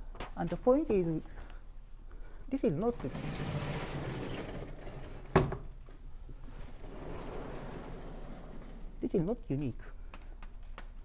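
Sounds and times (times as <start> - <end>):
sliding chalkboard rolling: 3.0 - 5.5, 6.5 - 9.0.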